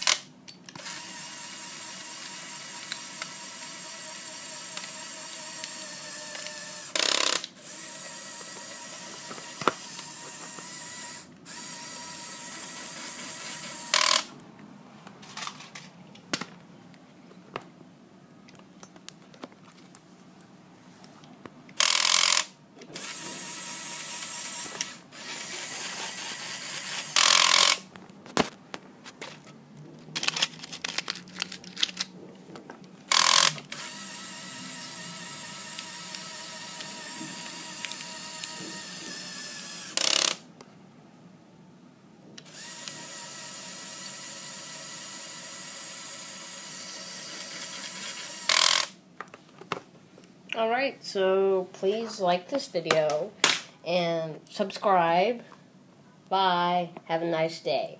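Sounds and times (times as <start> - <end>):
toy electric motors whining: 0.8 - 14.3, 21.8 - 27.8, 33.1 - 40.4, 42.4 - 49.0.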